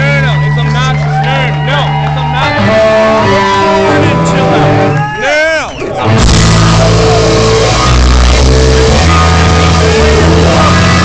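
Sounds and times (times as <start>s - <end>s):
electric guitar solo wailing: 1.9s - 5.3s, 6.0s - 11.0s.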